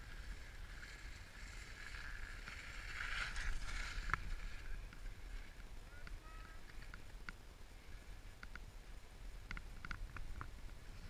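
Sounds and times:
skis scraping over snow: 0.0 - 7.1, 10.0 - 11.0
wind rumbling on microphone: 0.0 - 11.0.

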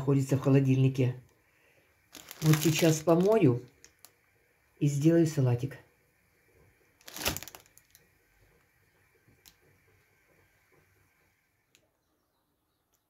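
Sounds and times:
plastic container crackling: 2.0 - 4.3, 6.9 - 8.1.

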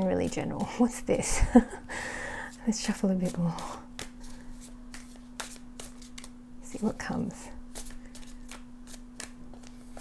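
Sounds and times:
cards being shuffled: 3.2 - 6.4, 7.7 - 10.0.

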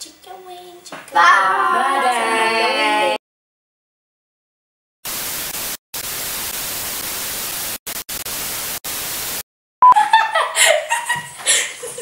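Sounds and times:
girls' voices: 0.0 - 3.2
tv static hiss: 5.1 - 9.4.

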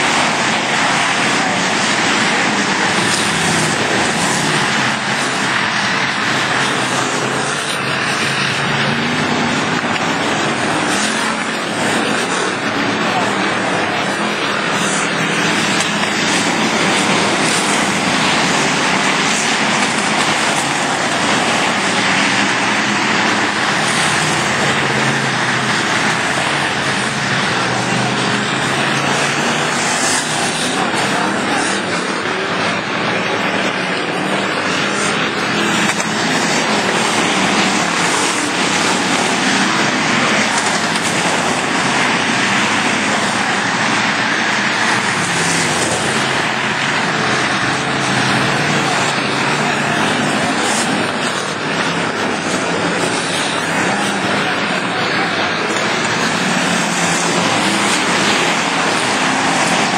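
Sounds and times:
racing car engines droning: 0.0 - 59.9.

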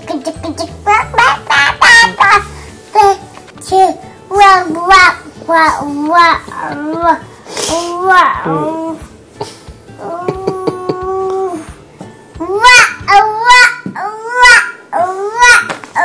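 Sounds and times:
toddler babbling: 0.1 - 9.0, 10.0 - 11.7, 12.4 - 16.0.

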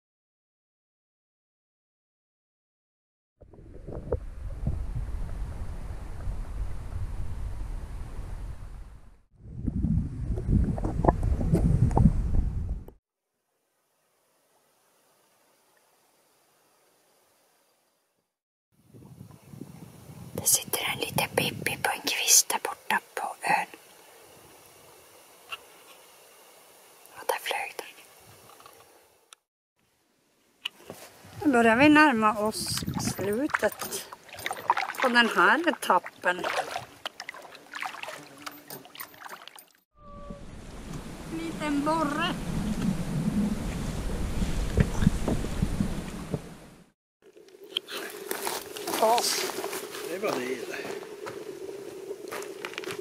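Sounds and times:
background hiss: 13.4 - 18.2, 19.2 - 32.7, 40.2 - 53.0
person whispering: 20.4 - 23.7, 27.1 - 28.0
underwater water rushing: 40.5 - 46.9.

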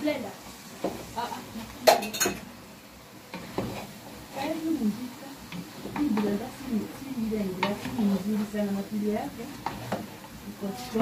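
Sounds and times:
wooden spoon stirring food in pot: 0.0 - 11.0.

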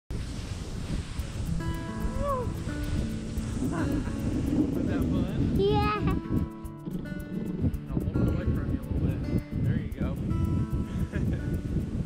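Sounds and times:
plastic sled sliding over snow: 0.1 - 1.6
background music with held notes: 0.4 - 12.0.

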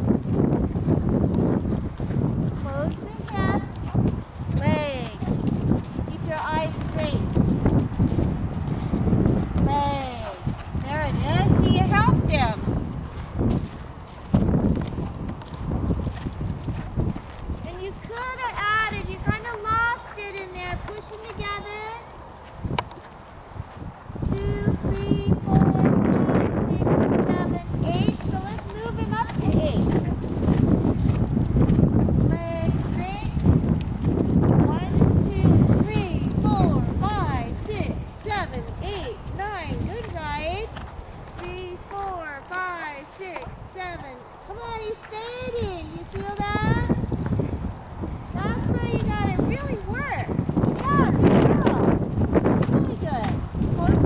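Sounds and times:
horse hoofbeats on sand: 0.0 - 54.0.

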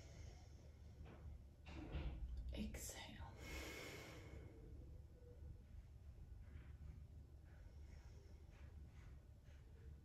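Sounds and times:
woman breathing slowly: 0.0 - 1.6, 3.2 - 5.4, 6.3 - 10.0.

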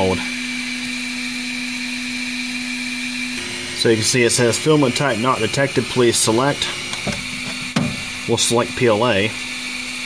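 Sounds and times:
cooling fans whirring: 0.0 - 10.0.

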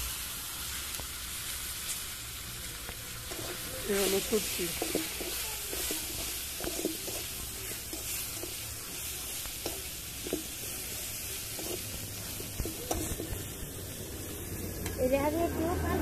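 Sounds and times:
vegetables sizzling in a wok: 0.0 - 16.0
metal spatula scraping a pan: 3.2 - 15.0.

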